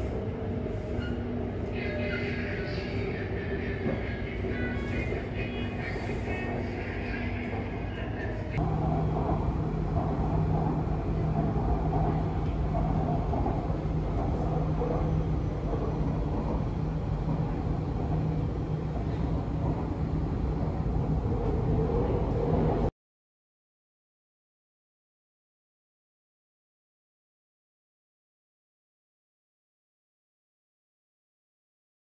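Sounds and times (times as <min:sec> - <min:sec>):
train rumble with motor whine: 0:00.0 - 0:22.9
low hum: 0:08.6 - 0:22.9.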